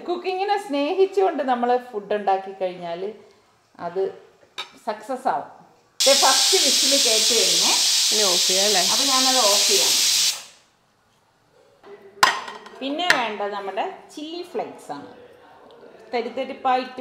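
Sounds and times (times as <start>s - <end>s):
women talking: 6.0s - 10.0s
pressure cooker steam hissing: 6.0s - 10.6s.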